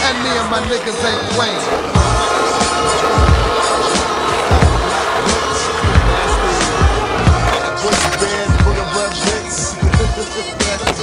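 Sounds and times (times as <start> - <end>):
hip hop beat: 0.0 - 11.0
skateboard wheels rolling on concrete: 0.0 - 11.0.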